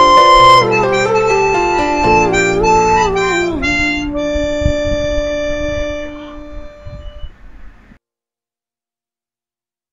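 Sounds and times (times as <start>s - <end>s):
harmonica note: 0.0s - 7.3s.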